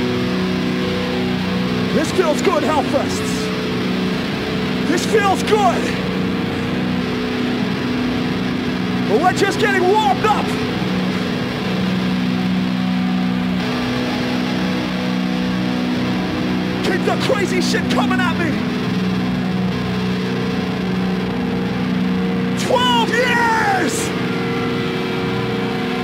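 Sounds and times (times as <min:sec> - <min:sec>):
amplified band drone: 0:00.0 - 0:26.0
people shouting: 0:22.6 - 0:24.2.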